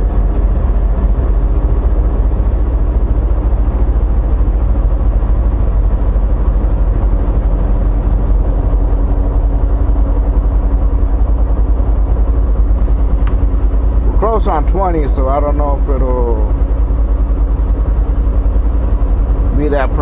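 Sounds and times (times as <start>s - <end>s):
truck engine and road noise: 0.0s - 20.0s.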